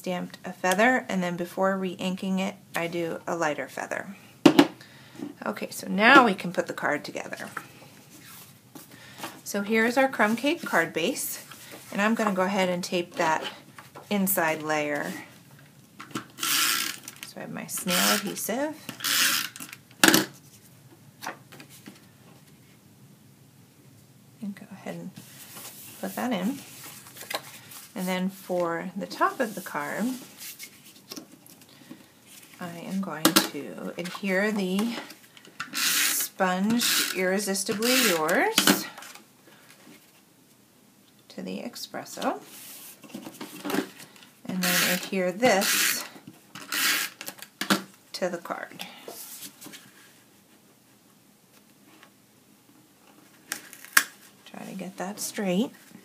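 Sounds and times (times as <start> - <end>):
tape runner rasping on paper: 16.4 - 17.1, 19.0 - 19.7, 35.7 - 37.2, 44.6 - 47.3.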